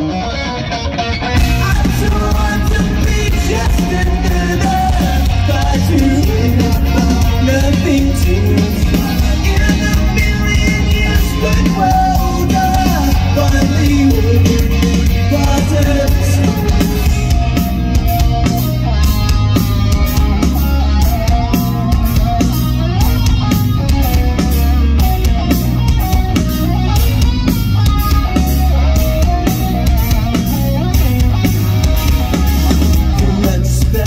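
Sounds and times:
electric guitars playing melody: 0.0s - 34.0s
steady drum beat: 1.4s - 34.0s.

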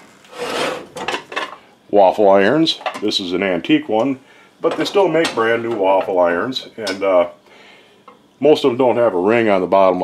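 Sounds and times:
cast iron scraping hard surface: 0.0s - 1.6s.

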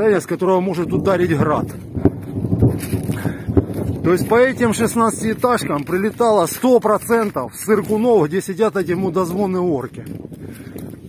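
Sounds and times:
footsteps on snow and mud: 0.0s - 11.0s.

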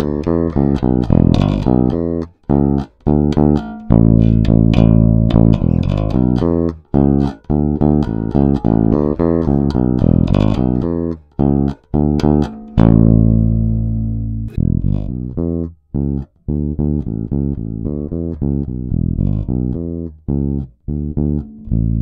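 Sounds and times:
electric bass plucked notes: 0.0s - 22.0s.

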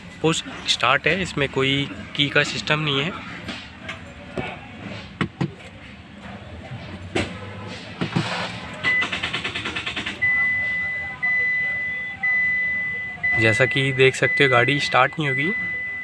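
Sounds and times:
car starter chattering: 8.0s - 11.4s
car warning beep: 8.8s - 16.0s.

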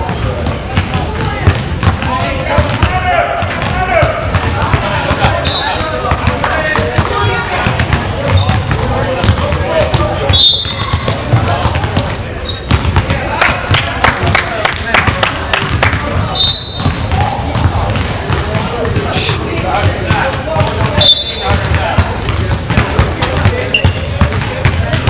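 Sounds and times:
basketball bouncing on floor: 0.0s - 25.0s
echoing voices: 0.0s - 25.0s.

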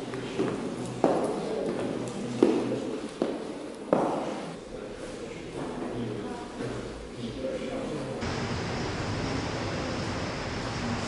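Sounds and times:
footsteps on wooden floor: 0.4s - 4.4s.

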